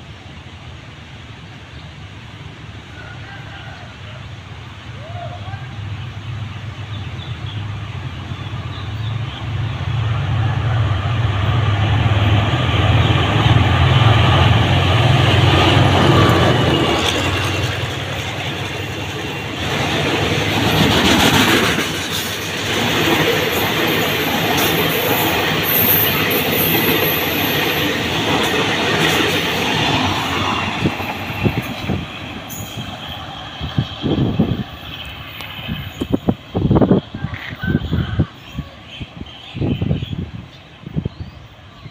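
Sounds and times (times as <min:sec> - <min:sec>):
locomotive engine drone: 0:03.9 - 0:37.2.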